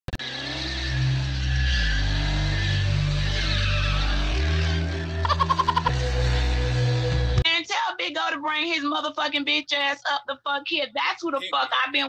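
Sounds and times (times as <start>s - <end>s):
car engine at high revs: 0.1s - 7.4s
tyres squealing on pavement: 0.7s - 5.9s.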